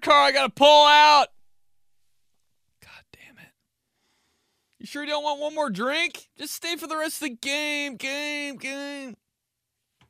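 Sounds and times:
man whispering: 2.8s - 3.6s.

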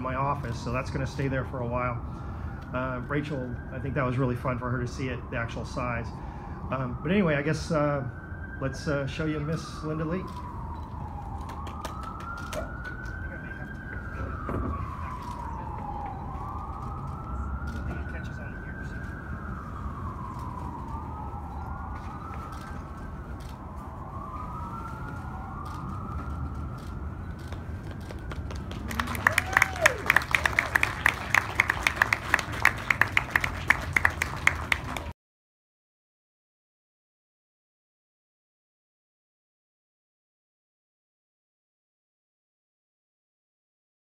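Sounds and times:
siren wailing: 0.0s - 35.1s
people clapping: 11.4s - 13.1s, 28.1s - 35.1s.

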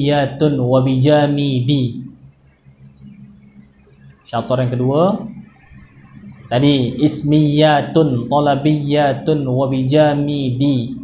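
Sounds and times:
faint low electrical hum: 0.0s - 11.0s.

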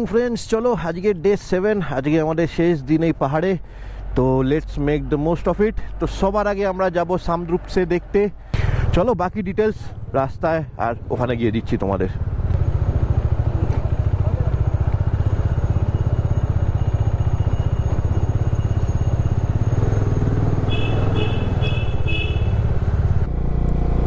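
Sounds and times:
motorcycle engine running: 8.6s - 24.0s.

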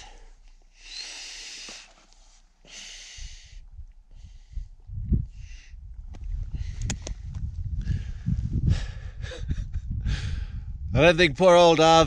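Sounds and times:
man breathing hard: 0.0s - 5.8s, 6.4s - 10.8s.

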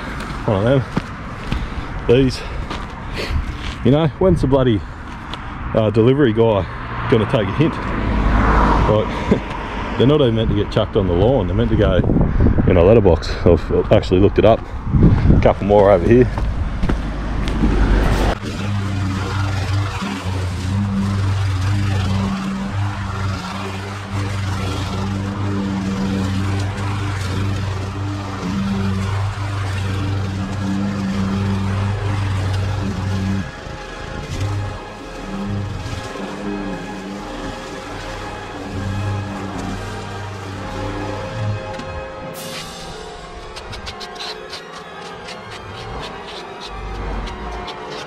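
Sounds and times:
lawn mower engine running: 16.1s - 48.0s.

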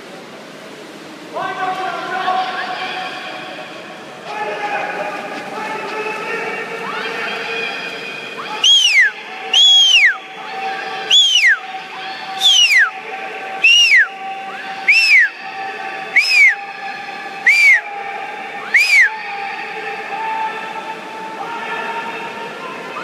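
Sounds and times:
pool hall hum: 0.0s - 23.0s
shrill whistling blasts: 8.4s - 10.2s, 11.1s - 11.6s, 12.4s - 12.9s, 13.6s - 14.1s, 14.9s - 15.3s, 16.2s - 16.6s, 17.5s - 17.8s, 18.7s - 19.1s.

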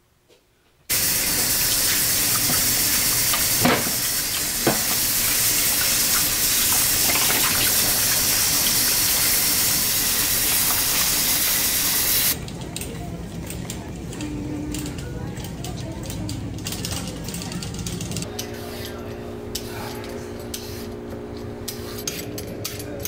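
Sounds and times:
tap water running into sink: 0.9s - 12.4s.

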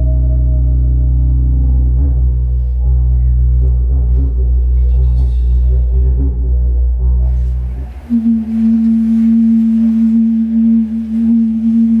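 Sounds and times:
long held musical note: 0.0s - 12.0s.

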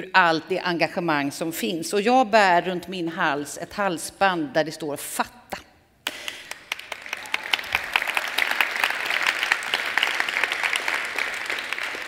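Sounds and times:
audience applause: 6.3s - 12.0s.

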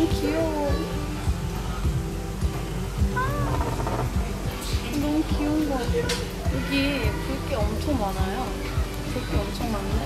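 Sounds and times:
background music with a beat: 0.0s - 10.0s
cat meowing: 3.1s - 4.2s.

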